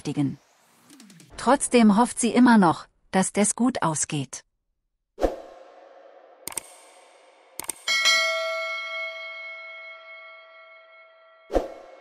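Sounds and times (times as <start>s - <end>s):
quick clicks: 6.5s - 6.8s, 7.6s - 7.9s
bell-like chime: 7.9s - 12.0s.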